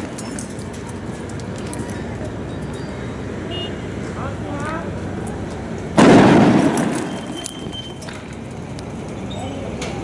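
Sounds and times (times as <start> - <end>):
loud explosive bang: 6.0 - 7.4.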